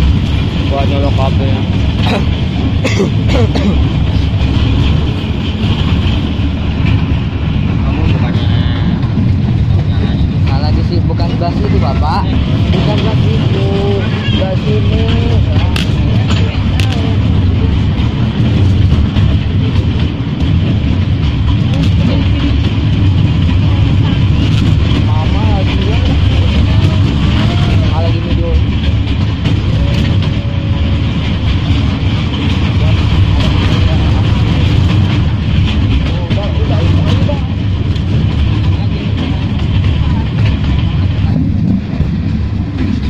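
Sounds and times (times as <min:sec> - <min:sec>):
train rumbling: 0:00.0 - 0:43.0
faint voices: 0:06.8 - 0:43.0.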